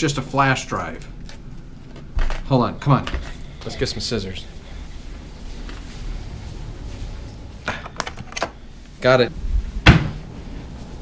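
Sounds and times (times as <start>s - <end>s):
camera rumble while walking: 4.4s - 7.7s.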